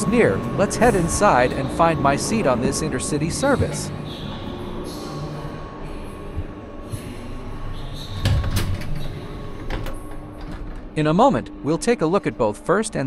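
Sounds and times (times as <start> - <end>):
train coach hum: 0.0 - 7.6.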